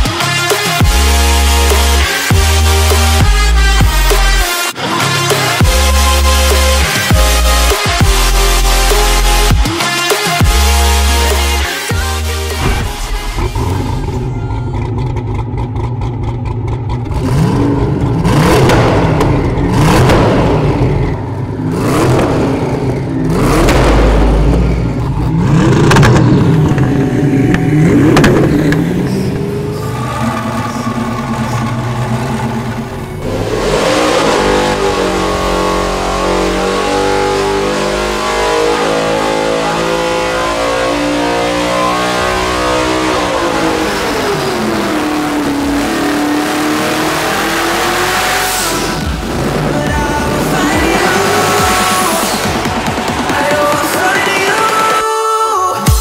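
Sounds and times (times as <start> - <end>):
car engine revving: 0.0 - 55.2.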